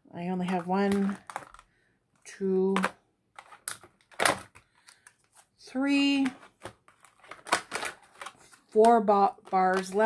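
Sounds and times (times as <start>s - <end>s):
plastic packs clicking and crinkling: 0.4s - 1.9s, 2.6s - 5.5s, 6.1s - 10.0s.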